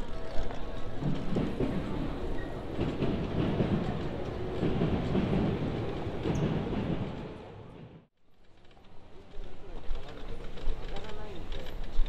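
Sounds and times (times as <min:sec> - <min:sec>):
train passing rumble: 0:00.1 - 0:08.1.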